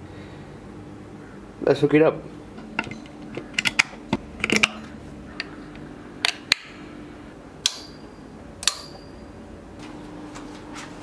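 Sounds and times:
sharp metallic clicks: 7.6s - 8.0s
high metallic ringing: 7.6s - 9.5s.

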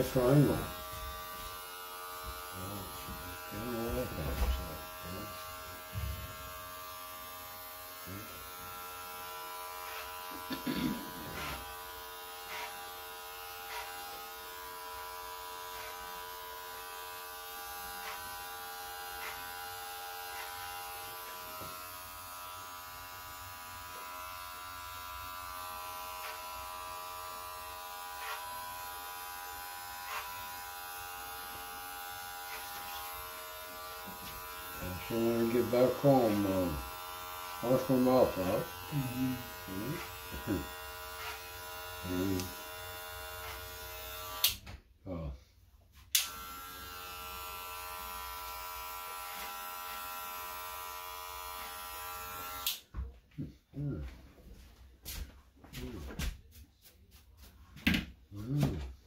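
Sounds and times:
hair clipper buzzing: 0.0s - 44.8s, 46.0s - 52.9s.

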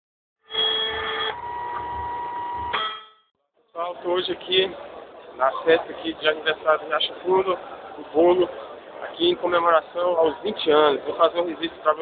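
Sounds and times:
steady electronic beep: 0.5s - 3.1s.

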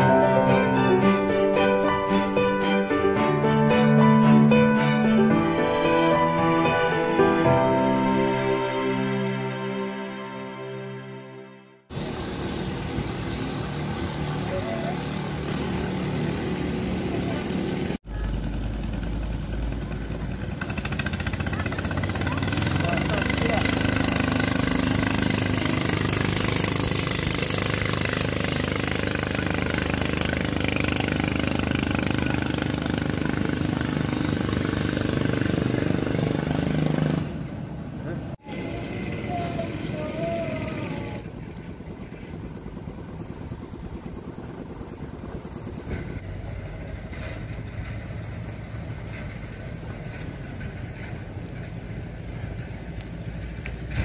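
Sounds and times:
outdoor background noise: 11.8s - 54.0s
boat engine running: 11.9s - 37.6s, 38.4s - 49.0s.

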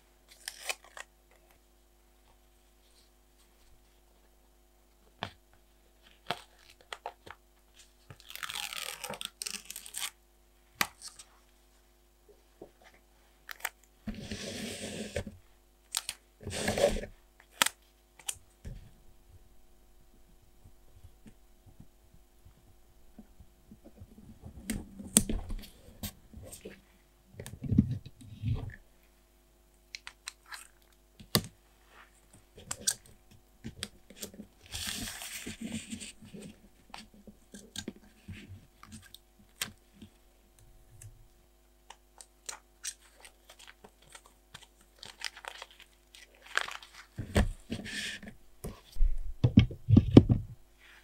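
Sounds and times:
soft paper rustle: 33.8s - 40.2s, 42.6s - 49.1s.

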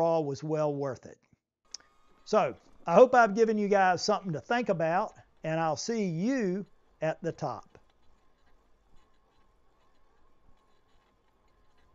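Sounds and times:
faint background hiss: 1.7s - 11.9s
thin steady tone: 1.7s - 11.9s.

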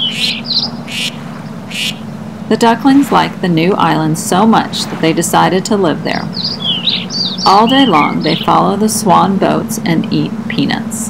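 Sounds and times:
ducklings peeping: 0.0s - 2.1s, 6.2s - 8.7s.

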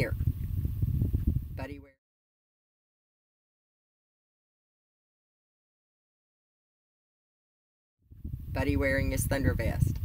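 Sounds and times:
low unsteady rumbling: 0.0s - 1.9s, 8.1s - 10.0s
woman speaking: 1.6s - 2.0s, 8.6s - 10.0s.

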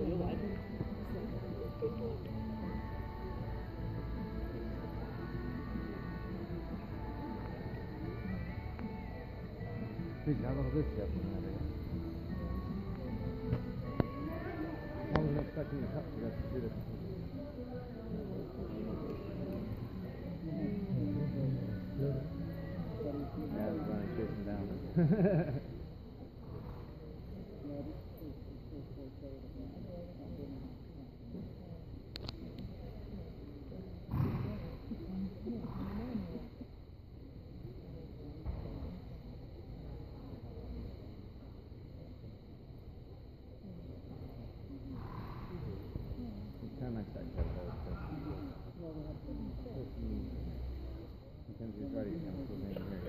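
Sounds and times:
echoing indistinct chatter: 0.0s - 53.0s.

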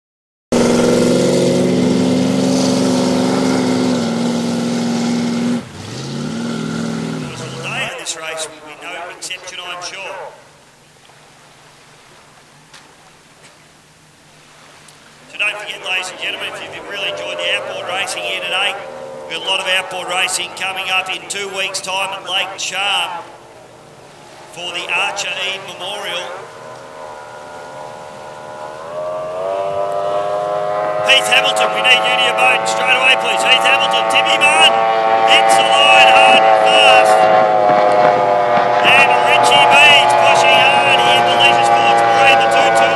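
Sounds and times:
race boat engine at high revs: 0.5s - 42.9s.

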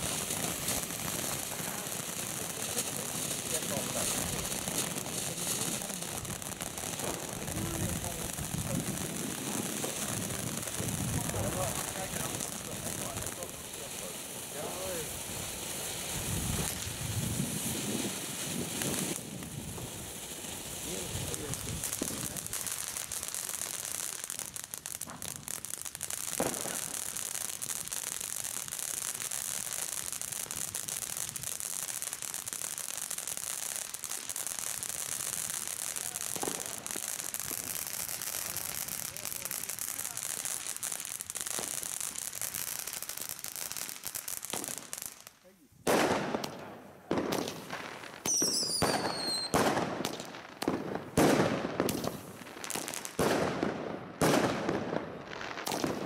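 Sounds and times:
firework fountains hissing: 0.0s - 45.2s, 46.0s - 53.7s
firework crackles: 0.0s - 56.0s
sharp firework pops: 0.0s - 56.0s.

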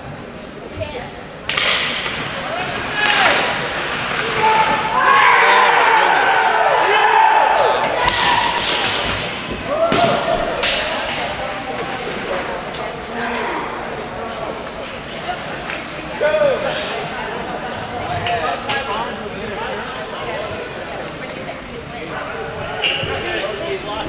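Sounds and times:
hockey sticks and puck clacking: 1.5s - 5.5s, 7.6s - 13.5s, 15.6s - 16.0s
crowd shouting and cheering: 2.3s - 12.4s.

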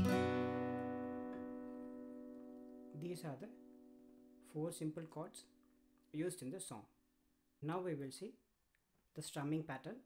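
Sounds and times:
acoustic guitar chord strum: 0.0s - 4.5s.

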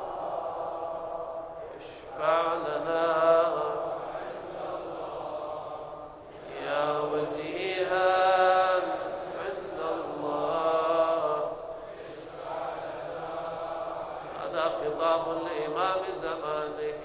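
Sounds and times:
man chanting: 0.8s - 5.6s, 6.3s - 17.0s.

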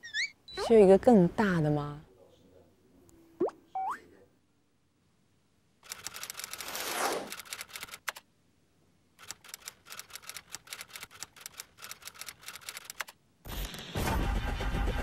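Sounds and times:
fast typewriter-like ticking: 5.8s - 6.7s, 7.3s - 8.2s, 9.2s - 13.1s.

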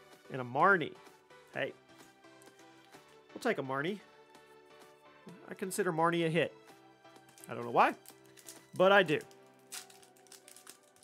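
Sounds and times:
quiet background music: 0.0s - 11.0s
foil wrapper crinkling: 7.3s - 11.0s.

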